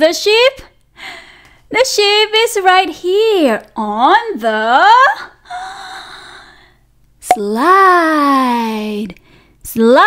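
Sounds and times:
speech: 0:00.0 - 0:00.7, 0:01.7 - 0:05.3, 0:07.3 - 0:10.0.

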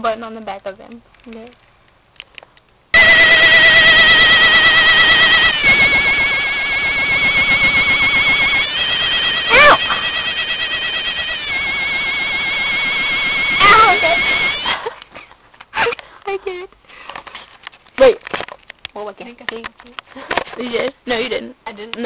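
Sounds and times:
toy laser warbling tone: 0:03.0 - 0:14.8
short high squeal: 0:03.0 - 0:14.9.

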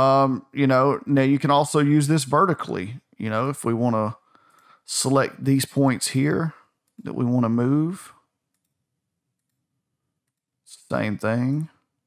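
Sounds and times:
faint computer mouse clicks: 0:08.5 - 0:08.8.

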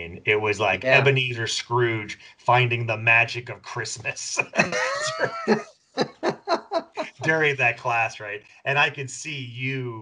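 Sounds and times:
men laughing: 0:00.3 - 0:03.2, 0:03.9 - 0:09.8.

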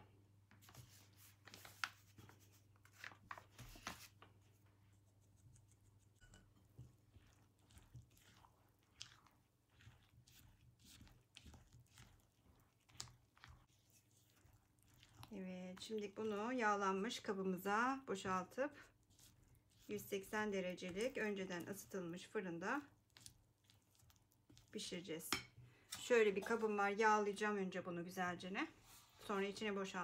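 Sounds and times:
spatula scraping batter in bowl: 0:05.1 - 0:17.4, 0:18.1 - 0:27.0.

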